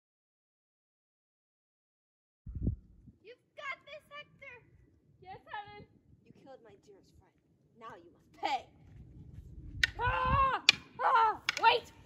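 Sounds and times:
wooden sticks clacking: 0:09.8 - 0:12.0
girls shouting and crying out: 0:09.9 - 0:12.0.

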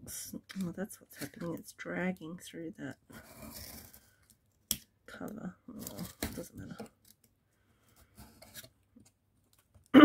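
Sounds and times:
knife scraping through cardboard: 0:03.2 - 0:04.0.

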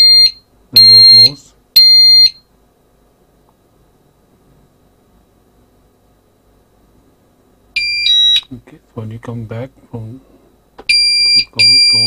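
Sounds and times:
alarm panel high-pitched beep: 0:00.0 - 0:02.4, 0:07.8 - 0:08.5, 0:10.9 - 0:12.0.

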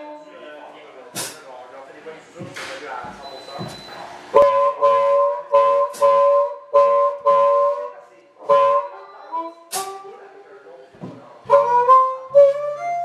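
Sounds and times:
amplified blues harmonica riff: 0:00.0 - 0:00.3, 0:04.4 - 0:10.2, 0:11.4 - 0:13.0.

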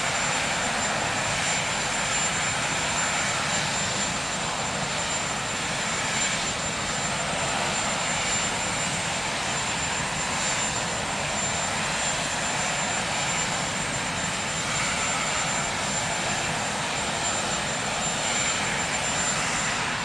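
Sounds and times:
helicopter turbine engines running: 0:00.0 - 0:20.0.

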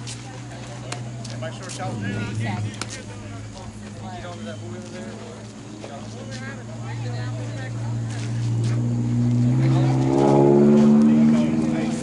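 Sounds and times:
vehicle engine speeding up: 0:01.4 - 0:04.6, 0:08.1 - 0:12.0.

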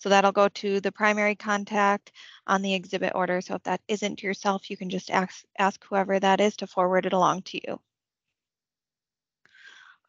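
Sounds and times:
person inhaling: 0:09.5 - 0:10.0.

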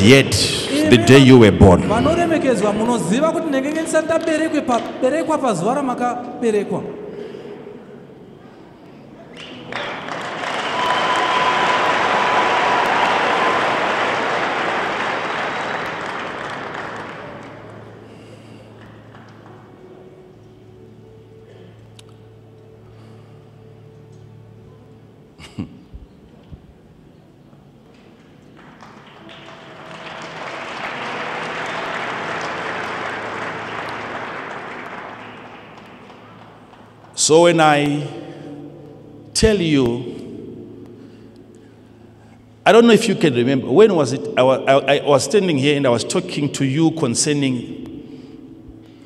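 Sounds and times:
crowd applauding in a big hall: 0:09.3 - 0:20.1, 0:28.2 - 0:38.1.

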